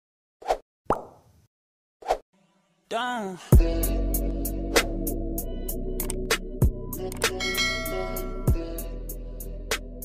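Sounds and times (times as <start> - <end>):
pop sound effects: 0.5 - 1.2.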